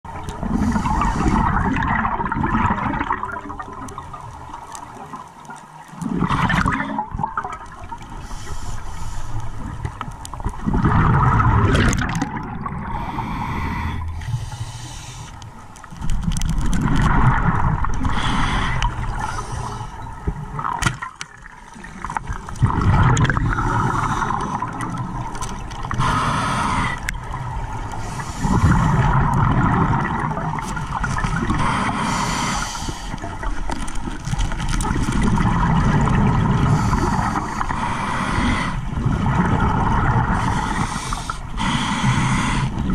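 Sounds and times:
rush of exhaled bubbles: 0.1s - 4.2s, 5.9s - 8.2s, 9.6s - 14.4s, 16.2s - 19.8s, 20.4s - 42.9s
scuba regulator breathing: 0.4s - 1.7s, 8.1s - 10.0s, 12.8s - 15.7s, 18.0s - 20.1s, 23.4s - 29.3s, 30.9s - 33.8s, 36.4s - 42.9s.

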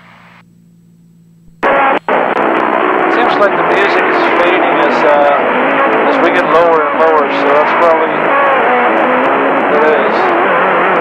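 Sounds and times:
faint engine hum: 0.0s - 11.0s
music over radio: 1.6s - 8.6s, 9.3s - 10.5s
loud radio static: 1.6s - 11.0s.

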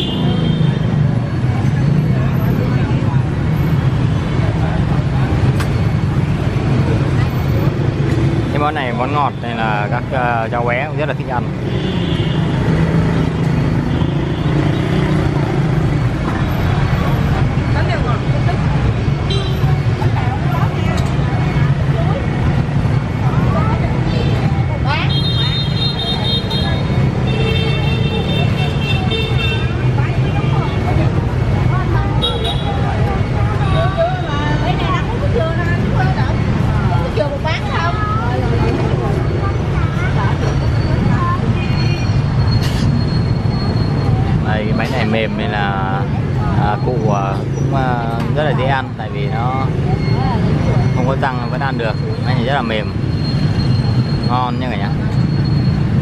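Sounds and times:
motorbike street traffic hum: 0.0s - 56.0s
people talking: 17.0s - 19.0s, 19.6s - 27.2s, 29.9s - 41.9s, 43.6s - 52.9s.

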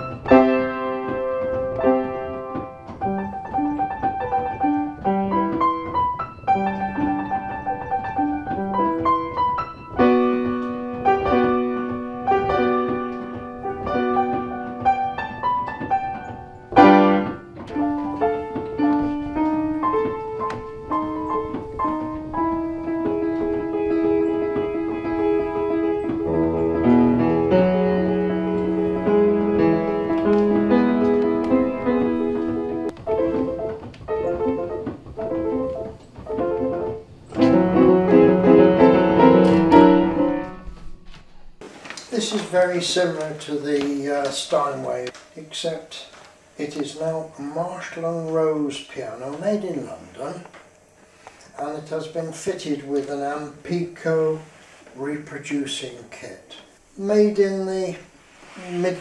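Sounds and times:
player piano playing: 0.0s - 51.0s.

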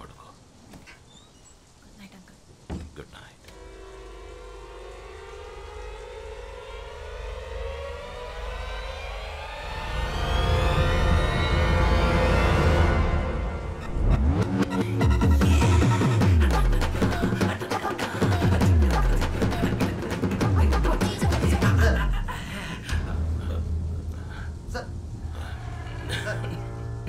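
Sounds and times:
rising orchestral swell: 3.5s - 16.2s
falling pitch sweeps: 3.6s - 14.7s.

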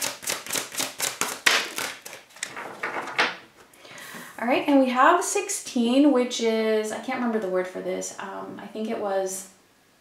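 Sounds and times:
cards being shuffled: 0.0s - 3.3s
card snapping out of deck: 0.1s - 2.6s.

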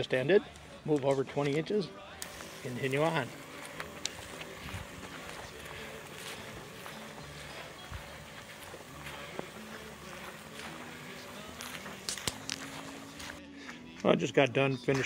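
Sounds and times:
sprayer pump humming: 2.2s - 13.4s
water spraying from nozzle: 2.2s - 13.4s
footsteps through grass: 2.2s - 13.5s
sharp clicks: 11.7s - 12.8s.

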